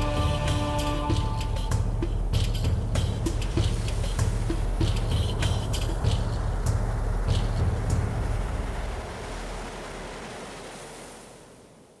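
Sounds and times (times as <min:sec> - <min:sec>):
ocean waves washing on shore: 0:00.0 - 0:12.0.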